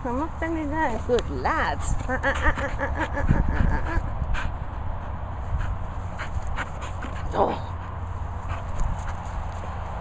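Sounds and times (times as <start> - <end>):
dog panting: 1.7 - 9.6.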